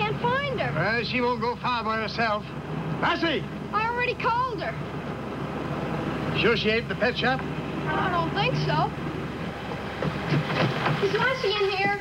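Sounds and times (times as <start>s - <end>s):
footsteps on pavement: 9.4s - 12.0s.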